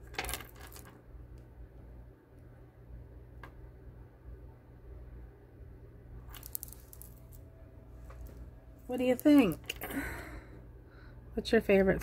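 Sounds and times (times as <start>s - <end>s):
low steady hum: 0.0s - 12.0s
rattle of small clicks: 6.3s - 7.4s.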